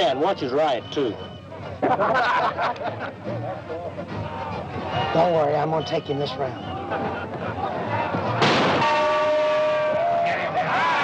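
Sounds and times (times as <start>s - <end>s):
crowd cheering and yelling: 3.9s - 11.0s.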